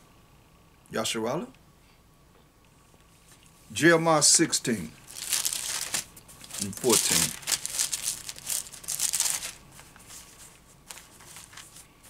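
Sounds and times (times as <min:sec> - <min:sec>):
pages rustling: 0:05.0 - 0:12.0.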